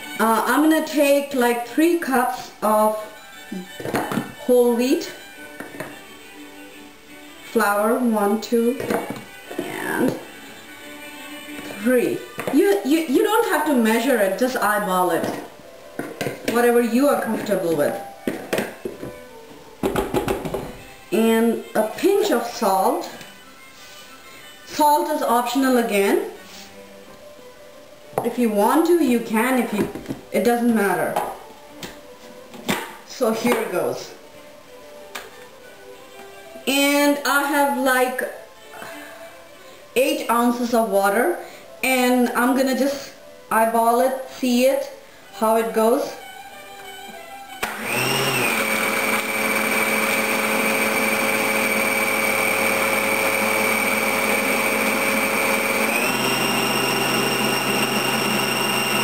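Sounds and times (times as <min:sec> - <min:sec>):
food processor motor running: 0:47.6 - 0:59.0.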